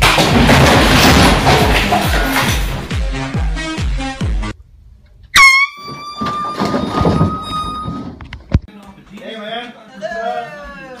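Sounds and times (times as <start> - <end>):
loud air horn blast: 5.4 - 5.9.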